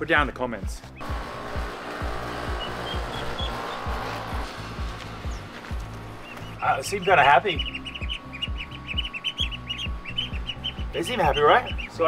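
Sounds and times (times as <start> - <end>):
chicks peeping: 1.0 - 12.0
music with deep beat: 1.0 - 12.0.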